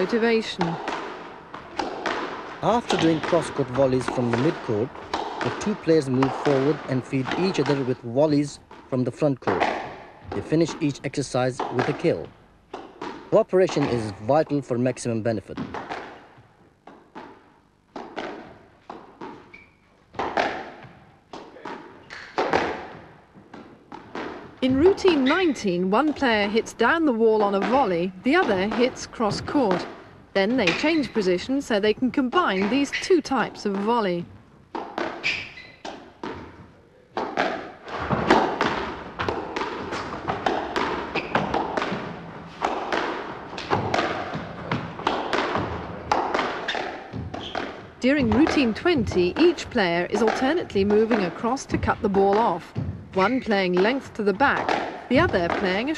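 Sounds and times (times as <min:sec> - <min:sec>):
ball hitting front wall: 0:00.0 - 0:07.9, 0:37.2 - 0:55.9
squash racket hitting ball: 0:00.0 - 0:14.4, 0:15.6 - 0:55.9.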